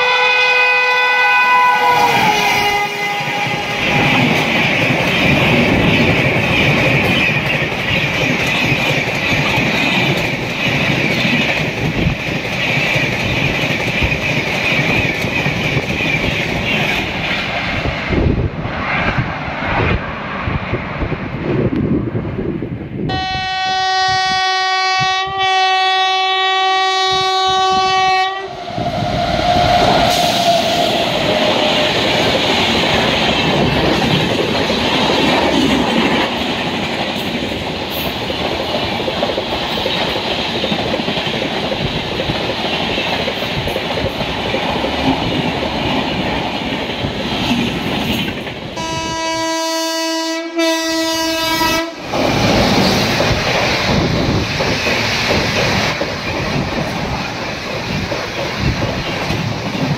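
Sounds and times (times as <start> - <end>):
train horn blast: 0.0 - 4.3, 23.1 - 31.9, 48.8 - 52.0
train wheels clattering on rails: 2.1 - 18.4, 28.6 - 48.9, 52.0 - 59.9.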